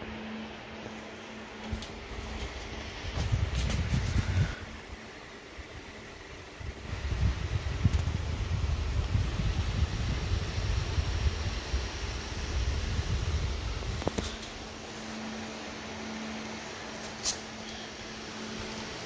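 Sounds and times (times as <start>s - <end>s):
cooling fans whirring: 0.0s - 19.0s.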